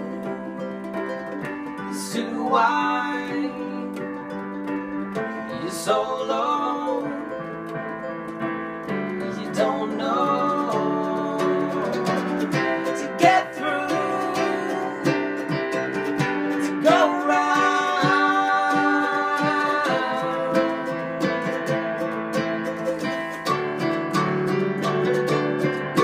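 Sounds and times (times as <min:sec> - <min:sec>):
man singing: 0:00.0 - 0:00.7, 0:01.7 - 0:04.2, 0:05.4 - 0:07.5, 0:09.2 - 0:21.8
electric keyboard chords: 0:00.0 - 0:26.0
mandolin strumming: 0:00.0 - 0:26.0.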